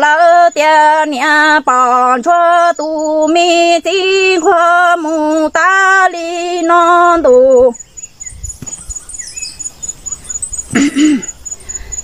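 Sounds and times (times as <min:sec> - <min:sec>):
faint chirps: 0:00.2 - 0:12.0
woman's voiced throat sound: 0:10.7 - 0:11.4.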